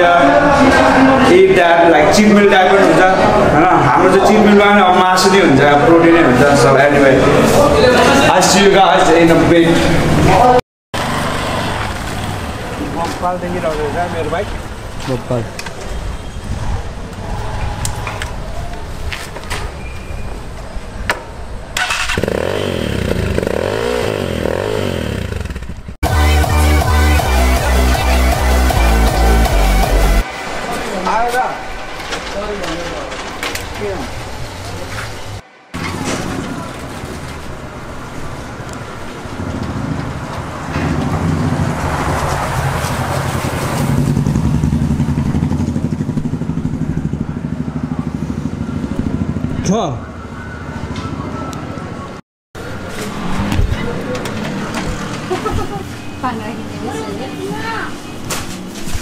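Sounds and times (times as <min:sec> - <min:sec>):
vehicle passing by: 0:00.2 - 0:19.1, 0:34.0 - 0:58.0
dirt bike engine revving: 0:21.8 - 0:30.2, 0:41.0 - 0:49.6
vehicle engine running: 0:42.8 - 0:50.2.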